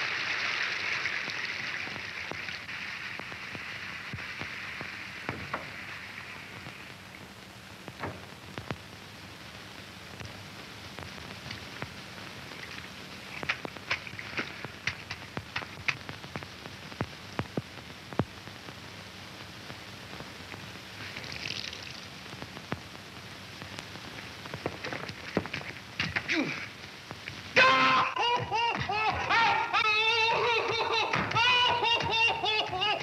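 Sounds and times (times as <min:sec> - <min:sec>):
film soundtrack hiss and crackle: 0:00.0 - 0:33.0
music: 0:27.6 - 0:33.0.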